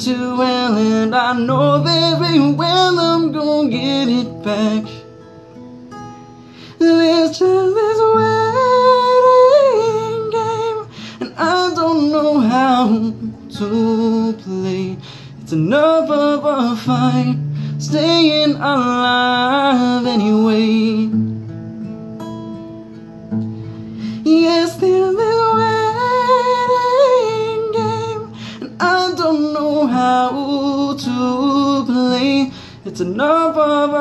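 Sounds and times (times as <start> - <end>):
man singing: 0.0 - 5.0, 6.7 - 21.2, 24.1 - 34.0
acoustic guitar chords: 0.0 - 34.0.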